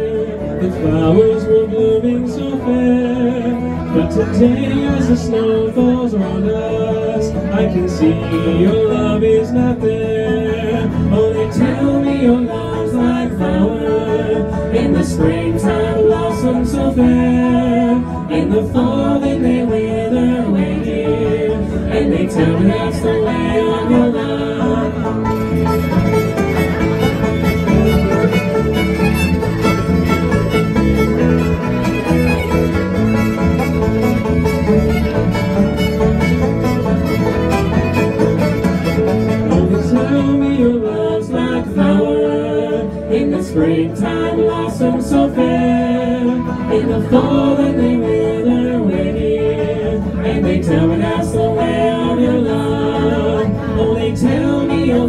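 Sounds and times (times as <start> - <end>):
acoustic guitar: 0.0 - 55.0
banjo: 0.0 - 55.0
electric bass: 0.0 - 55.0
fiddle: 0.0 - 55.0
voices singing: 0.0 - 55.0.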